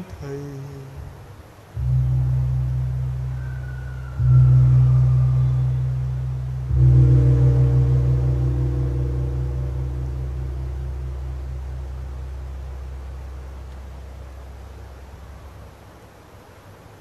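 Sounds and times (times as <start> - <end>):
deep gong ringing: 1.8 - 15.6.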